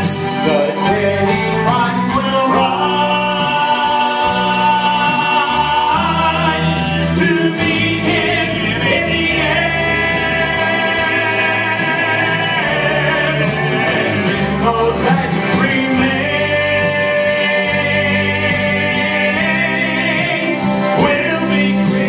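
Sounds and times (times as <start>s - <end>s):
accompaniment music with beat: 0.0s - 22.0s
male trio singing in harmony: 0.0s - 22.0s.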